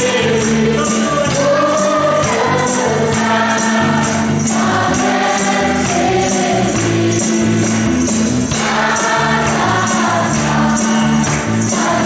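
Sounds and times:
men singing together: 0.0s - 7.9s, 8.5s - 12.0s
electric bass line: 0.0s - 12.0s
guitars: 0.0s - 12.0s
jingling percussion: 0.0s - 12.0s.

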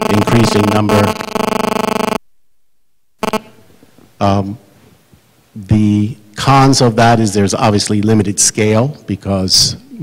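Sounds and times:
electrical buzz: 0.0s - 4.2s.

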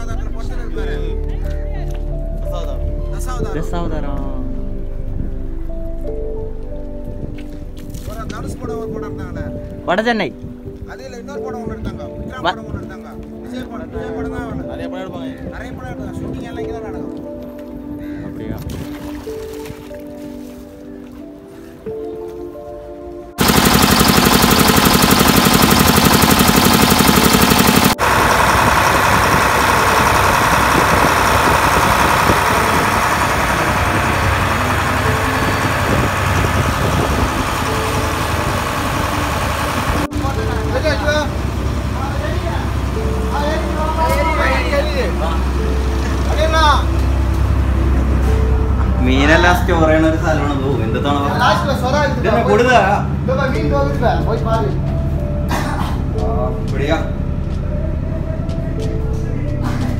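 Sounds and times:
low hum: 23.4s - 43.8s
boat engine running: 23.4s - 49.0s.

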